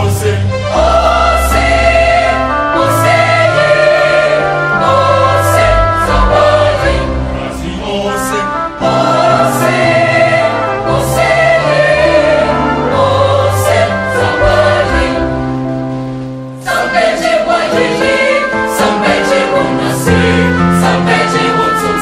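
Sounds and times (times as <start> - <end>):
mixed choir singing gospel: 0.0 - 22.0.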